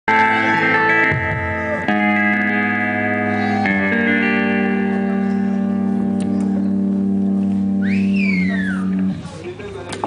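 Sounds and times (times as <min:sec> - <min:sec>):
sustained instrumental chords: 0:00.1 - 0:09.3.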